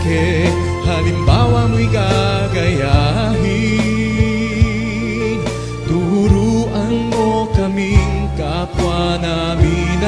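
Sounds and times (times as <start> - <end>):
soft low beats: 0.0 - 8.3
devotional hymn music: 0.0 - 10.0
steady bass line: 0.0 - 10.0.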